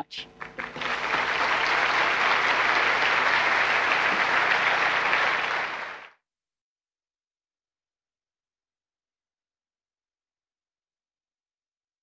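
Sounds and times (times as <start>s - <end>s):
audience applauding: 0.4s - 6.2s.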